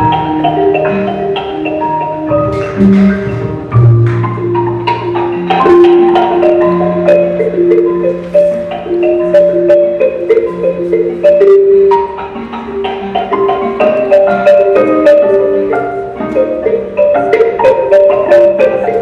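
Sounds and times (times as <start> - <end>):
instrumental music: 0.0 - 19.0.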